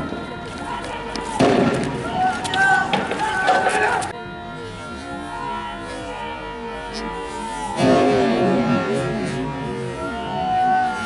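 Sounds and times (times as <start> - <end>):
people shouting: 0.0 - 11.0
gunshot bangs: 1.4 - 1.8.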